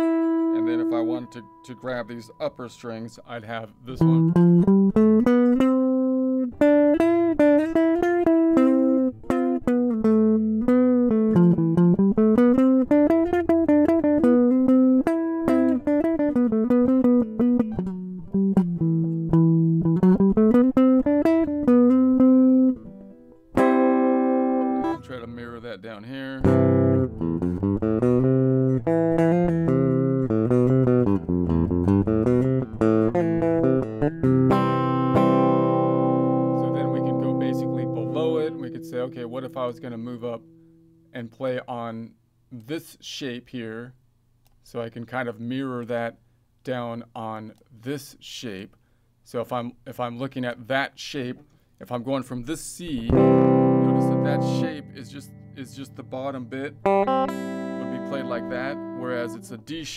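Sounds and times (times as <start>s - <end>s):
electric guitar playing: 0.0s - 25.5s, 26.4s - 41.0s, 53.0s - 59.9s.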